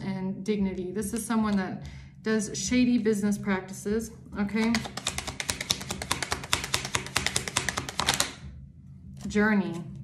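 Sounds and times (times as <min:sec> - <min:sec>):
cards being shuffled: 0:04.6 - 0:08.4.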